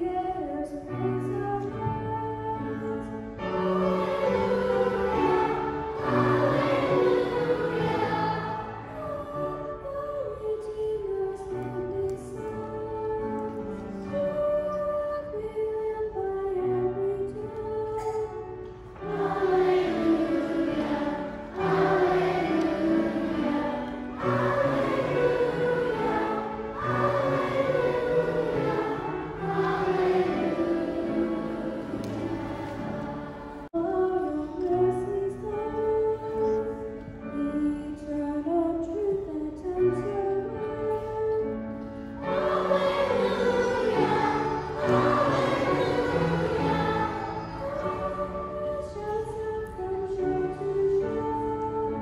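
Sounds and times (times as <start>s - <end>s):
musical accompaniment: 0.0s - 52.0s
choir singing held notes: 1.8s - 14.5s, 17.4s - 35.0s, 40.9s - 52.0s.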